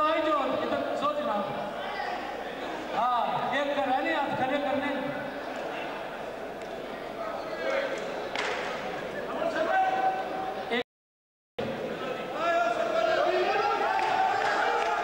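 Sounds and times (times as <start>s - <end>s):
men calling and talking: 11.7s - 15.0s.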